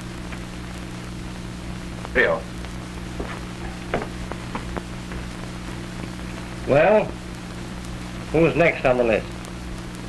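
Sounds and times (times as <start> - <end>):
soundtrack hiss: 0.0 - 10.0.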